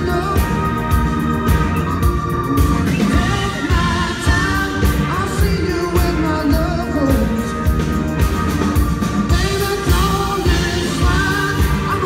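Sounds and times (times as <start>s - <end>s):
man singing: 0.0s - 1.5s, 2.9s - 8.0s, 9.2s - 12.0s
rock band playing: 0.0s - 12.0s.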